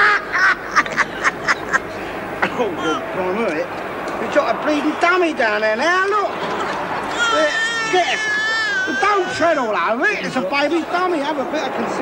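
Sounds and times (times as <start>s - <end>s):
man laughing: 0.0s - 3.0s, 6.2s - 8.4s.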